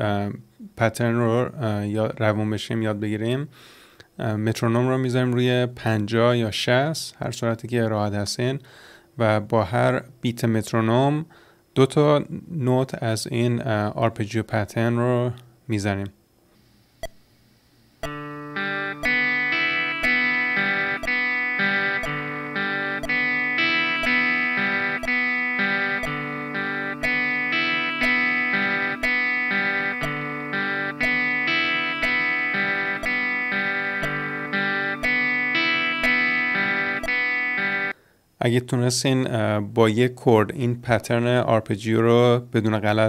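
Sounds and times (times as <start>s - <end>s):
metronome clicking: 18.0s - 38.0s
clean electric guitar arpeggio: 18.1s - 38.0s.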